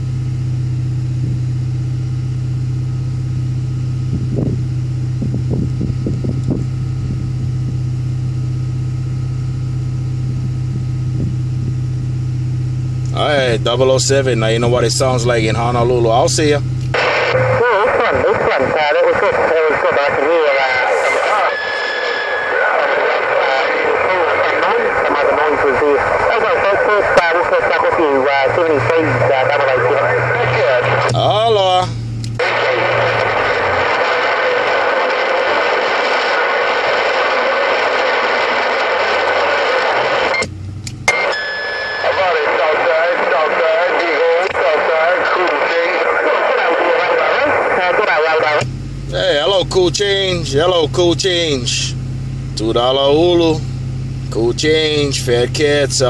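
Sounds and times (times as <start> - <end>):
distorted radio voices: 13.0 - 40.5, 41.1 - 52.0, 54.3 - 56.0
radio static: 13.0 - 40.5, 41.1 - 52.0, 52.6 - 53.6, 54.3 - 56.0.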